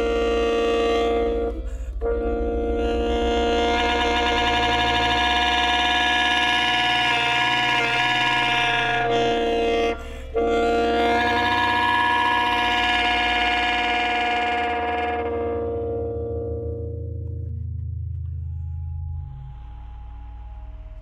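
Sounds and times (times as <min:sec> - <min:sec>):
alto saxophone sustained notes: 0:00.0 - 0:17.2
low electronic drone: 0:00.0 - 0:21.0.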